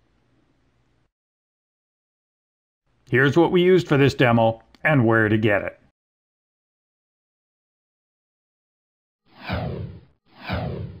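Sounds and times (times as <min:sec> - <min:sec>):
whoosh falling in pitch: 0:09.4 - 0:11.0.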